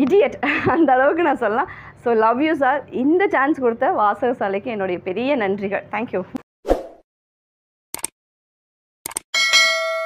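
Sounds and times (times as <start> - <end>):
bell ding with overtones: 9.4 - 10.0.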